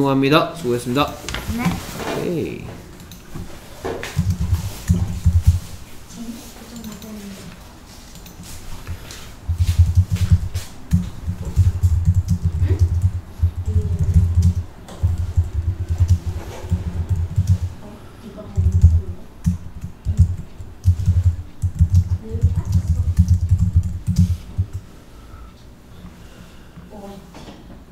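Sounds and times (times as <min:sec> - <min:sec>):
computer keyboard typing: 0:03.0 - 0:05.8, 0:06.7 - 0:07.3, 0:08.1 - 0:24.9.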